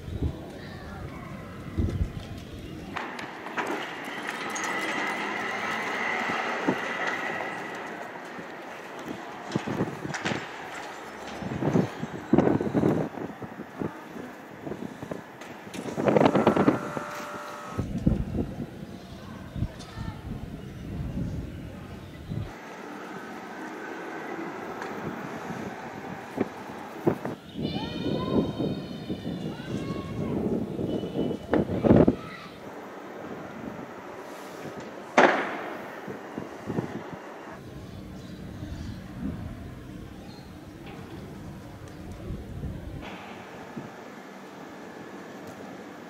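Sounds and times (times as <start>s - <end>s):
wind buffeting microphone: 0.0s - 4.0s, 4.9s - 17.1s, 17.7s - 22.6s, 24.6s - 34.9s, 35.6s - 44.1s.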